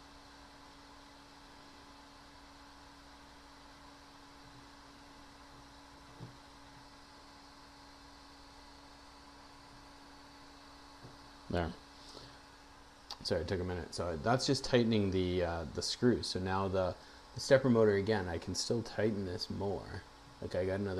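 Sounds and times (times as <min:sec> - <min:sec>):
faint low hum and hiss: 0:00.0 - 0:20.9.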